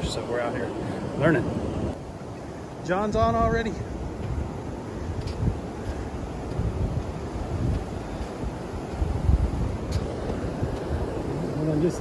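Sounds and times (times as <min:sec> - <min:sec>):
ocean surf washing: 0:00.0 - 0:12.0
wind buffeting microphone: 0:00.0 - 0:12.0.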